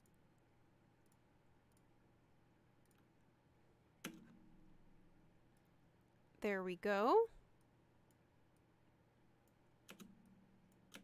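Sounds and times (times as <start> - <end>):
computer mouse click: 1.0 - 1.9, 4.0 - 4.4, 9.4 - 11.0.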